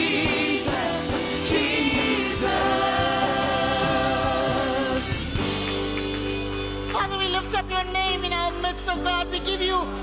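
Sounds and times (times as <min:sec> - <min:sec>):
gospel singers with band: 0:00.0 - 0:05.9.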